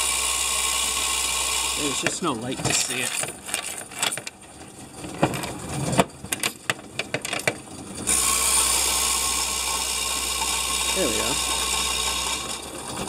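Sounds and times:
coin counter motor whirring: 0.0s - 4.2s, 8.0s - 13.0s
coins clattering: 2.6s - 4.3s.

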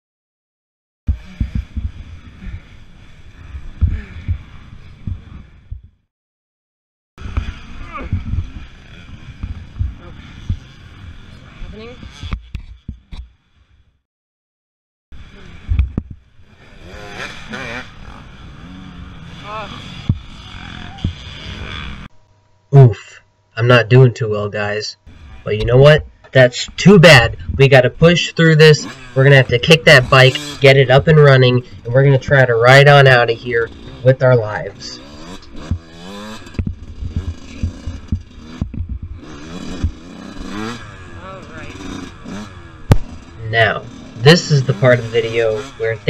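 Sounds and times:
muffled man's voice: 22.8s - 35.0s, 43.4s - 46.0s.

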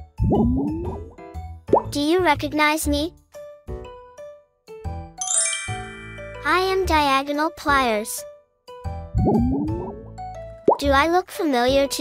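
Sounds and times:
bright chime with high shimmer: 5.2s - 7.0s.

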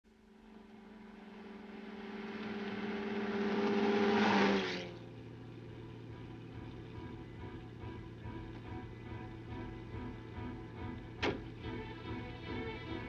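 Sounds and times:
car engine hum: 0.1s - 13.0s
road and wind noise: 0.1s - 13.0s.

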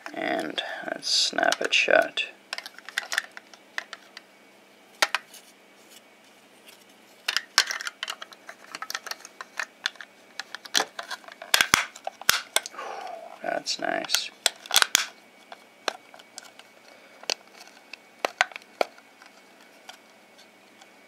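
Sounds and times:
person humming: 12.7s - 13.5s.

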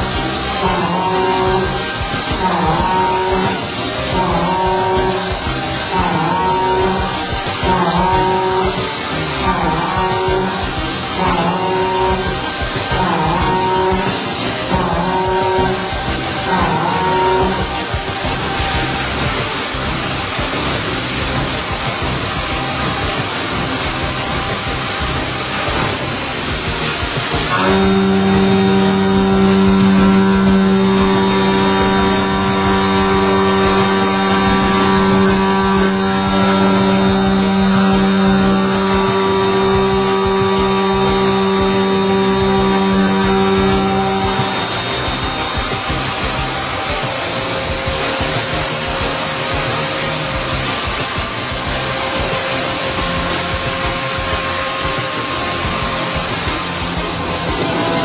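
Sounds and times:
milling machine spindle whine: 0.0s - 58.0s
steady hiss: 0.0s - 58.0s.

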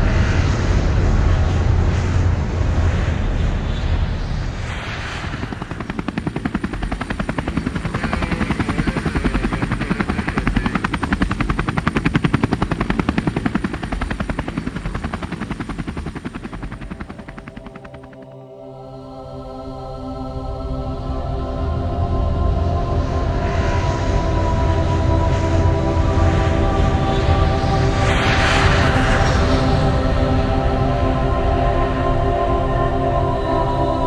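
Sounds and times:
aircraft rumble from on board: 0.0s - 18.4s
fast even pulsing: 5.0s - 18.4s.

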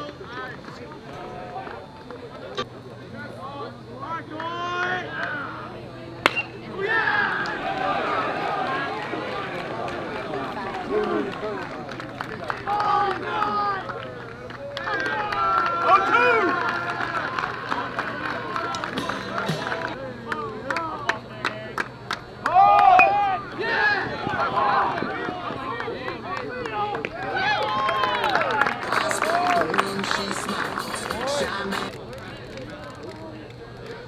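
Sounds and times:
crowd shouting and cheering: 3.8s - 33.2s
bat cracking against ball: 6.2s - 6.7s.

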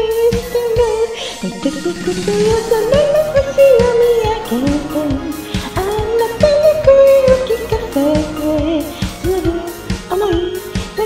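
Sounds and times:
person singing karaoke: 0.0s - 11.0s
pop backing track with drum beat: 0.0s - 11.0s.

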